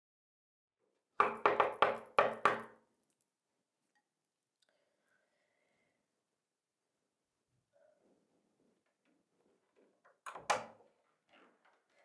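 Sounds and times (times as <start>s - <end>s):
knocking on a door: 1.2s - 2.7s.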